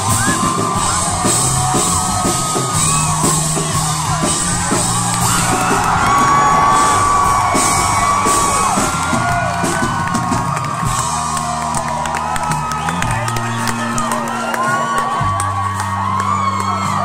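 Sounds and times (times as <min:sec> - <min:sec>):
crowd whooping and yelling: 0:00.0 - 0:17.0
live band playing loudly: 0:00.0 - 0:17.0.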